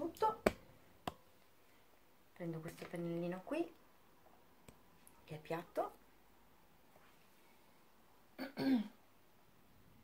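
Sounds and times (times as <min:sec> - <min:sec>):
woman clearing throat: 0:08.4 - 0:09.0.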